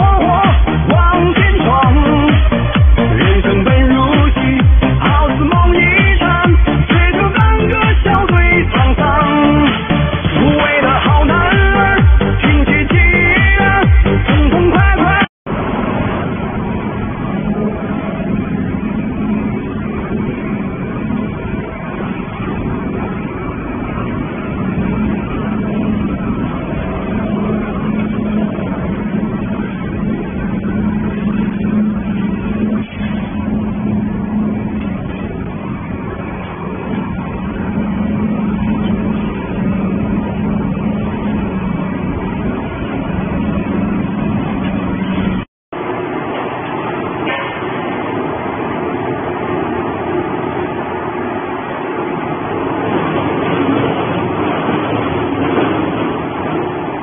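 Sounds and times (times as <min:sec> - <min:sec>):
low motor hum: 0:00.0 - 0:57.0
shredding machine drone: 0:00.0 - 0:57.0.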